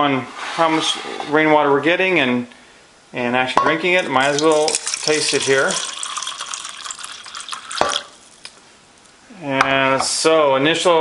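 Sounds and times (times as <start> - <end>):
water pouring into plastic cup: 4.0 - 8.6.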